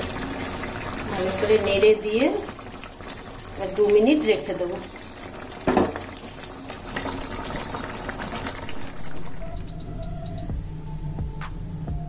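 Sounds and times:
sauce simmering and sizzling in pan: 0:00.0 - 0:10.6
background music: 0:08.8 - 0:12.0.

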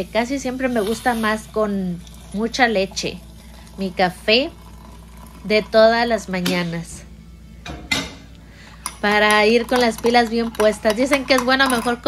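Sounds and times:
spoon clinking mug: 0:08.8 - 0:12.0
spoon scraping ceramic mug: 0:08.8 - 0:12.0.

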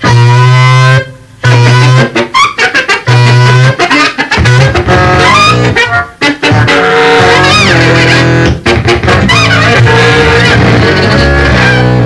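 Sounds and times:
amplified guitar low held notes: 0:03.1 - 0:12.0.

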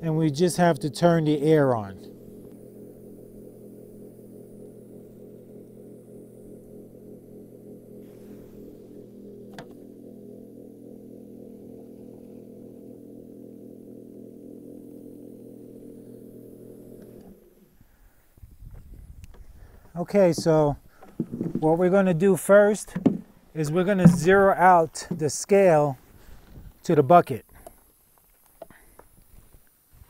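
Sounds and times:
electric pump humming: 0:00.0 - 0:27.7.

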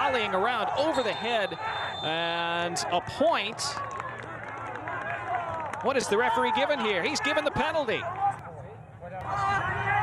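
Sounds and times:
players calling out: 0:00.0 - 0:03.6.

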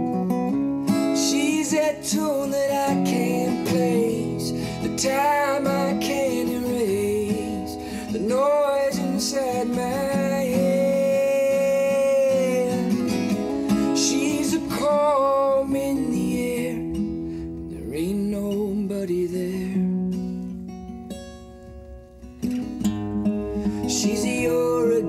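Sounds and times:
strummed acoustic guitar: 0:00.0 - 0:25.0
man singing: 0:00.9 - 0:20.0, 0:23.7 - 0:25.0.

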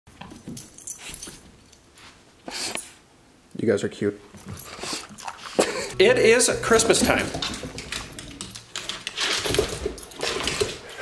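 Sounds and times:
jingles: 0:06.6 - 0:10.8.

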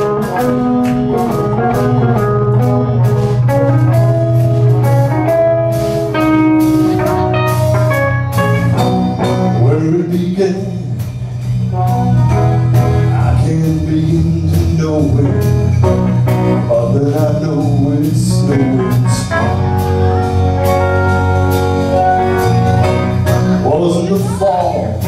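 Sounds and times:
live pop-rock band playing: 0:00.0 - 0:25.0.

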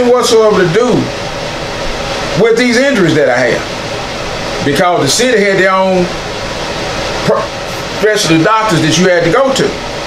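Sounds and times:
steady background hiss: 0:00.0 - 0:10.0.

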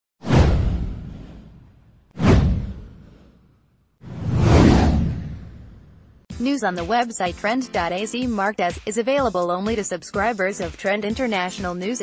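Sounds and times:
deep boom: 0:00.2 - 0:03.3, 0:04.1 - 0:06.2
swoosh: 0:00.2 - 0:06.2.

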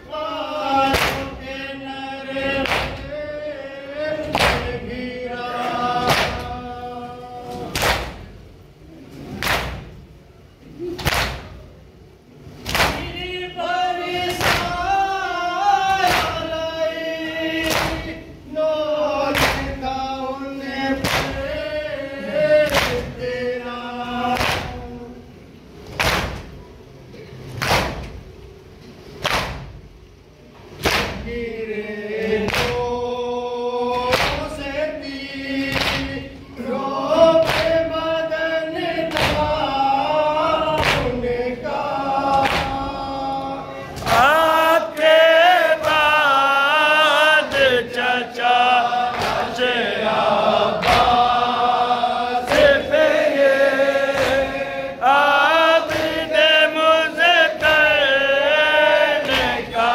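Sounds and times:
men chanting together: 0:00.0 - 0:08.3, 0:12.6 - 0:25.2, 0:30.9 - 0:59.9
chest slaps in unison: 0:00.8 - 0:01.4, 0:02.6 - 0:03.1, 0:04.2 - 0:04.8, 0:06.0 - 0:06.5, 0:07.5 - 0:08.3, 0:09.2 - 0:10.0, 0:10.9 - 0:11.7, 0:12.6 - 0:13.1, 0:14.3 - 0:14.8, 0:15.9 - 0:16.4, 0:17.6 - 0:18.2, 0:19.3 - 0:19.7, 0:21.0 - 0:21.5, 0:22.6 - 0:23.1, 0:24.3 - 0:24.8, 0:25.8 - 0:26.6, 0:27.5 - 0:28.3, 0:29.1 - 0:29.8, 0:30.6 - 0:31.3, 0:32.4 - 0:32.9, 0:33.9 - 0:34.5, 0:35.7 - 0:36.2, 0:37.4 - 0:37.8, 0:39.1 - 0:39.6, 0:40.8 - 0:41.2, 0:42.3 - 0:42.8, 0:50.8 - 0:51.3.

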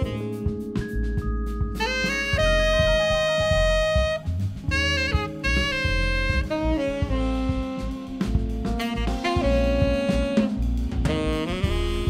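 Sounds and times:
bass: 0:00.0 - 0:12.0
drums: 0:00.0 - 0:12.0
tenor saxophone jazz melody: 0:00.0 - 0:12.0.

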